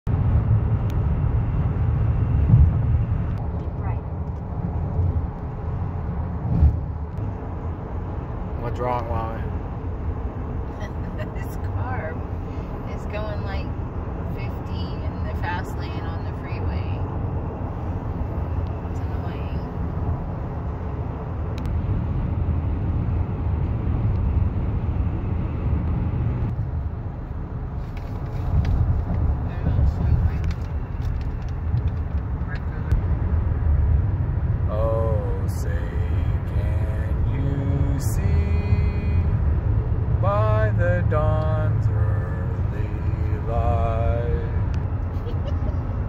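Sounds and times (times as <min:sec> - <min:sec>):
road rumble inside moving car: 0:00.1 - 0:46.0.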